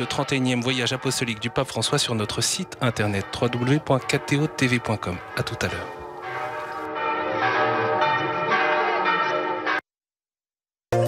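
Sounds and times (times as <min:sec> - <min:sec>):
church bells pealing: 0:00.0 - 0:09.8.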